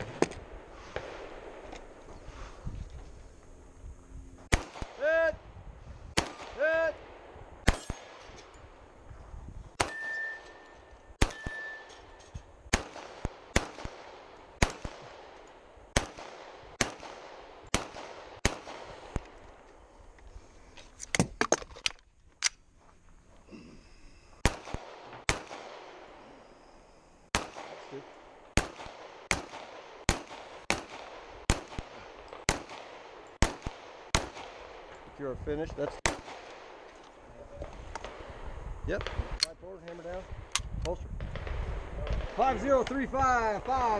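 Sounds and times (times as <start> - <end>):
pistol shots: 4.5 - 5.2, 6.2 - 8.4, 9.7 - 19.4, 24.4 - 26.1, 27.3 - 34.9, 36.0 - 36.8
steel targets ringing: 9.8 - 12.4.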